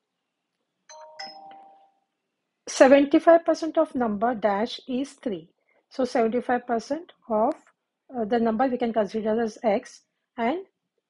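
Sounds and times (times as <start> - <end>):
two-note electronic chime: 0.9 - 2.0.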